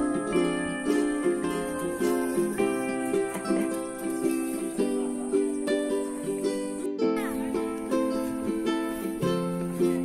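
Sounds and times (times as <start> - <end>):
plucked-string tune: 0.0 - 10.0.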